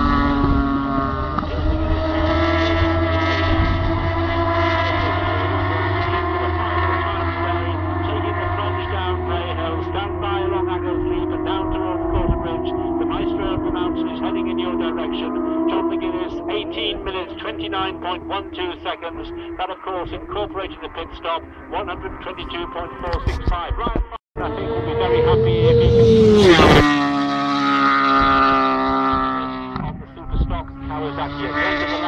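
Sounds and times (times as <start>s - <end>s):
racing motorcycles at full throttle: 0.0s - 32.0s.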